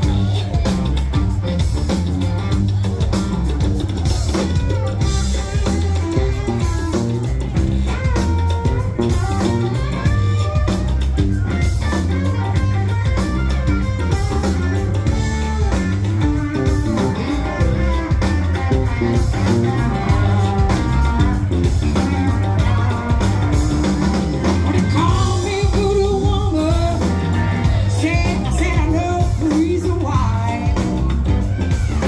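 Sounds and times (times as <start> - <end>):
bass guitar: 0.0 - 32.0
drum kit steady beat: 0.0 - 32.0
electric guitar lead: 0.0 - 32.0.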